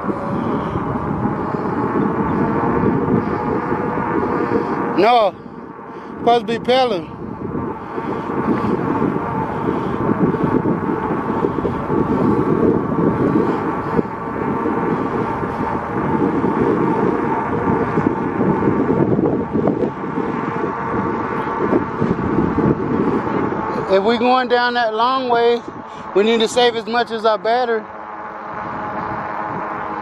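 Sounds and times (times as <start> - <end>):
faint electric motor whine: 0.0 - 30.0
wind rushing over microphone: 0.0 - 30.0.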